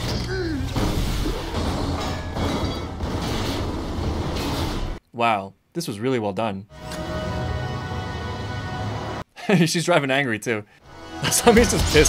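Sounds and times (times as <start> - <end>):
action soundtrack music: 6.7 - 9.2, 10.8 - 12.0.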